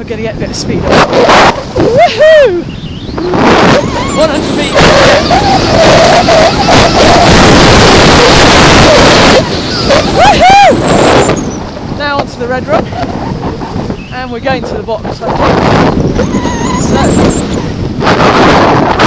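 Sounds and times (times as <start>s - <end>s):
wind buffeting microphone: 0.0s - 19.0s
rising and falling voiced call: 1.2s - 11.4s.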